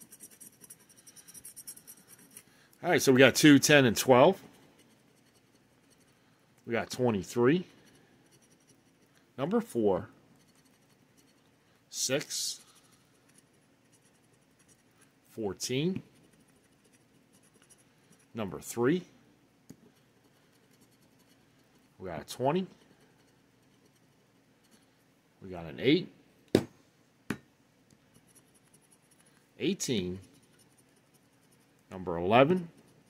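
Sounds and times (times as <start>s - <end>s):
scratching lottery ticket coating: 0.0s - 6.3s, 7.0s - 9.2s, 10.3s - 18.4s, 28.0s - 33.0s.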